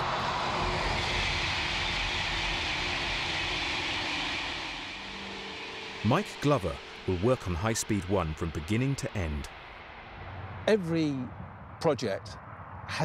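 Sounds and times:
high-speed train passing: 0.0s - 13.0s.

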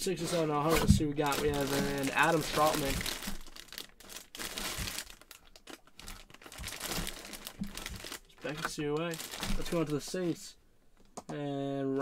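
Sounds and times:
plastic bag crinkling: 0.1s - 10.5s.

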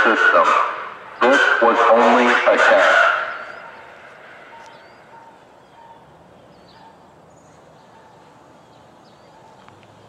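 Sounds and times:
siren test announcement: 0.0s - 4.8s
faint bird chirps: 3.3s - 9.6s.

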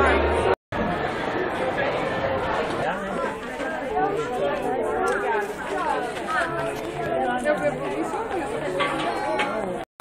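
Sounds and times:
indistinct chatter of voices: 0.0s - 9.9s.

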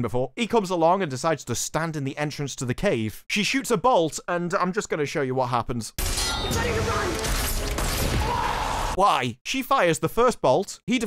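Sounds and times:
sharp metallic clink: 6.0s - 7.8s
dramatic music: 6.2s - 8.2s.

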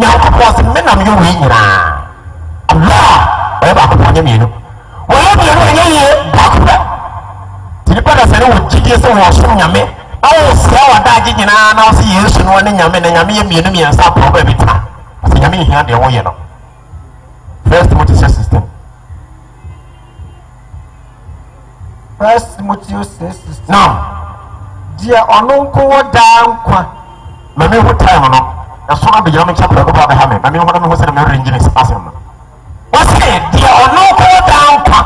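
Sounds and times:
man speaking over public address: 0.0s - 16.6s, 17.6s - 18.9s, 22.1s - 35.0s
steady low hum: 0.0s - 35.0s
muffled bass beat: 5.3s - 9.6s, 13.3s - 22.5s.

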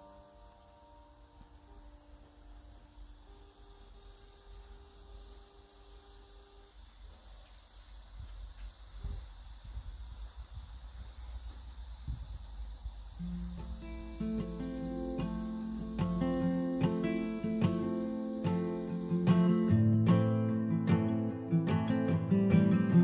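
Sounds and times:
insects chirping: 0.0s - 23.0s.

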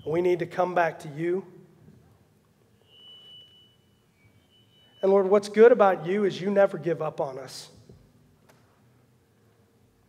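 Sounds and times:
faint high-pitched whistle tone: 0.0s - 0.4s, 2.7s - 5.4s.

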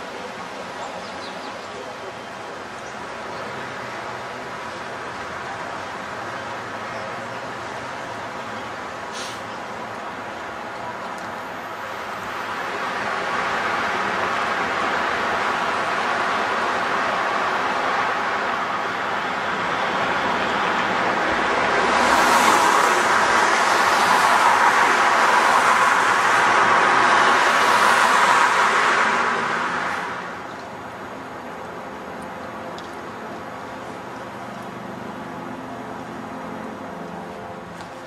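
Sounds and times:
street traffic noise: 0.0s - 38.0s.

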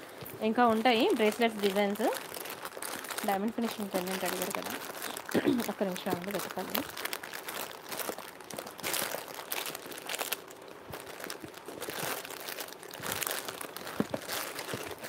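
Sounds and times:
plastic packets crinkling: 0.0s - 15.0s.

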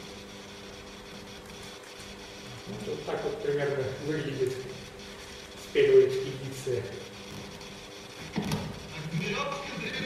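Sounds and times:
steady low hum with tones: 0.0s - 10.0s.

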